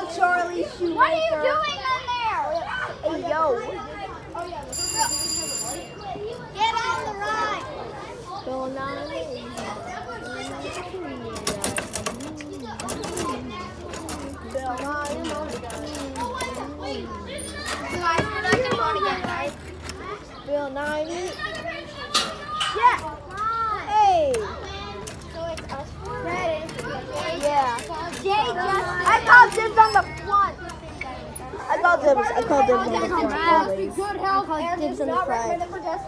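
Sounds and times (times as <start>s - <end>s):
children talking and calling out: 0.0s - 36.0s.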